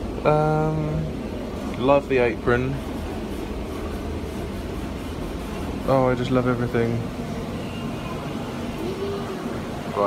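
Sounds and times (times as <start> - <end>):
room noise rumble and hiss: 0.0 - 10.0.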